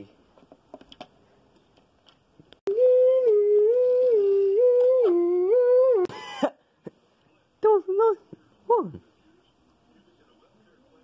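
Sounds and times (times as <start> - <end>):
person humming: 2.7 - 6.1.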